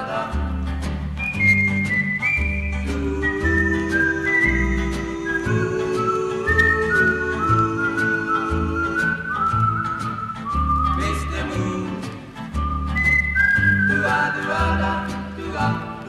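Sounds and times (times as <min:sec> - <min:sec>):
whistled melody: 0:00.0 - 0:15.8.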